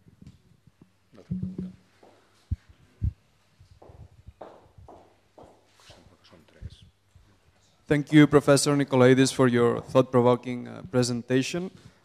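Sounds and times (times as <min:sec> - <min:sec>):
footsteps on tiled floor: 0:03.6 - 0:06.1.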